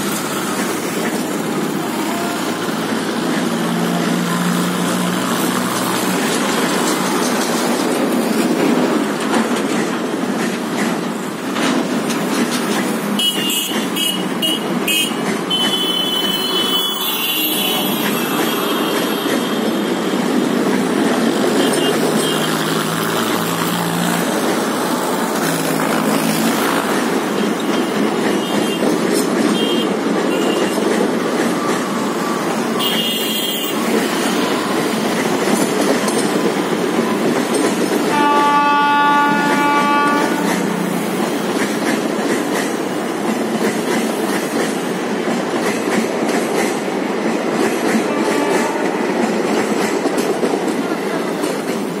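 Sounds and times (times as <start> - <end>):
train wheels rumbling on rails: 0.0 - 52.0
train horn: 13.2 - 19.9, 32.8 - 34.6, 38.1 - 40.9, 48.0 - 49.2.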